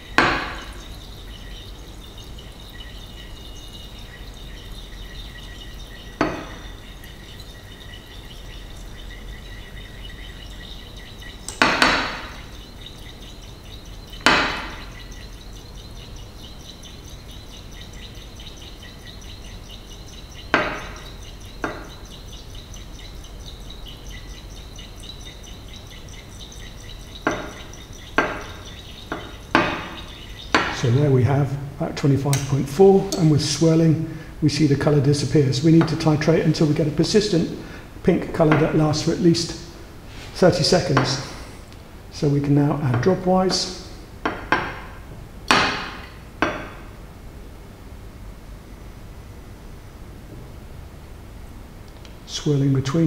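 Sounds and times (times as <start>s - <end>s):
glass flask clinking: 0.0s - 31.0s, 32.3s - 33.7s.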